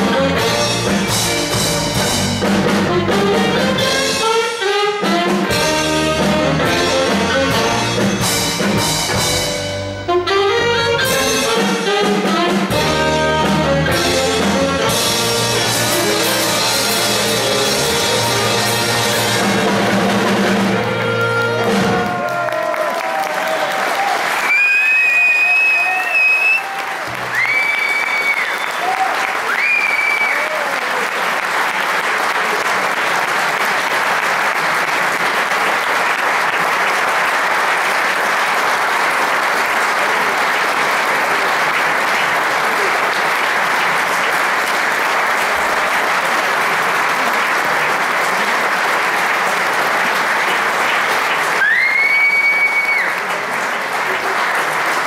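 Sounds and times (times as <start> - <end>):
audience applauding: 14.6 - 55.0
high whistles: 24.5 - 26.7, 27.3 - 30.4, 51.6 - 53.2.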